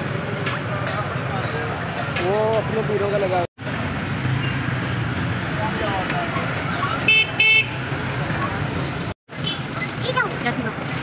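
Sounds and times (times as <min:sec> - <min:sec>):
street traffic: 0:00.0 - 0:11.0
vehicle horn toots: 0:07.1 - 0:07.8.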